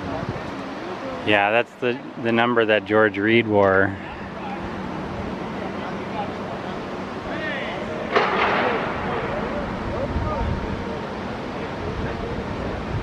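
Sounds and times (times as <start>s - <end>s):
distant voices: 0.0s - 13.0s
steady background hiss: 0.0s - 13.0s.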